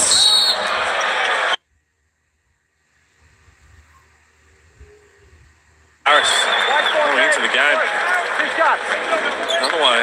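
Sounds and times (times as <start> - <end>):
basketball game broadcast: 0.0 - 2.0, 5.9 - 10.0
faint low background noise: 1.4 - 7.6.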